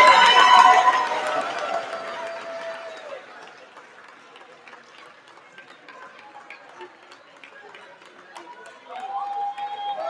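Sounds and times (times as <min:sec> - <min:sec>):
audience cheering and clapping: 0:00.0 - 0:03.4, 0:08.8 - 0:10.0.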